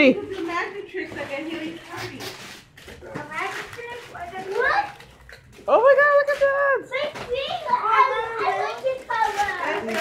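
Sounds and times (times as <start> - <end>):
children talking over one another: 6.2 - 10.0.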